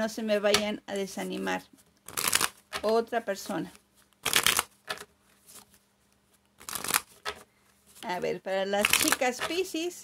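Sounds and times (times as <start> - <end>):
playing cards shuffled by hand: 1.4 - 2.9, 3.7 - 8.2.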